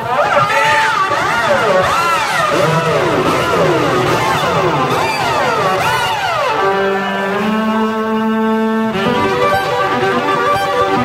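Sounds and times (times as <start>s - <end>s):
fiddle playing sliding glissandi: 0.0s - 11.0s.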